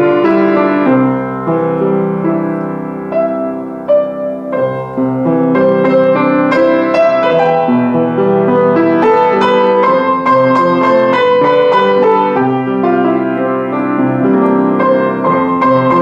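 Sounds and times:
piano playing chords and melody: 0.0s - 16.0s.

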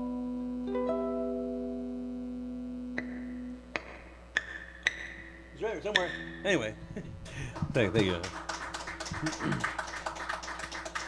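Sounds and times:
acoustic guitar chord ringing: 0.0s - 3.6s
low amplifier hum: 0.0s - 11.0s.

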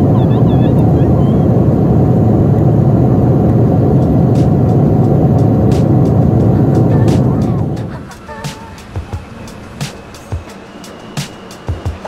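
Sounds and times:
jet airliner cabin noise: 0.0s - 12.0s.

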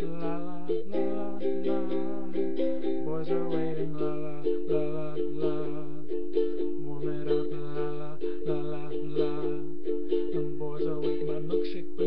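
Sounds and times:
ukulele strumming: 0.0s - 12.0s.

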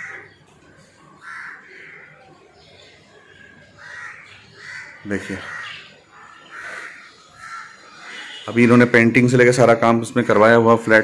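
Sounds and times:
harsh bird calls: 0.0s - 11.0s.

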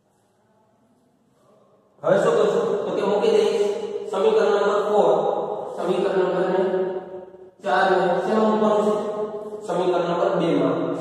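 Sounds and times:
man speaking: 2.0s - 6.9s, 7.6s - 11.0s.

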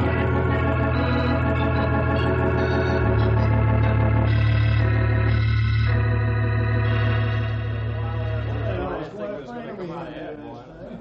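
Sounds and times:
organ chords: 0.0s - 9.1s.

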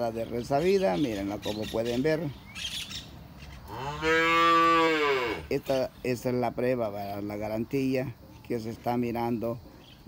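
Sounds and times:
cow mooing: 3.7s - 5.5s.

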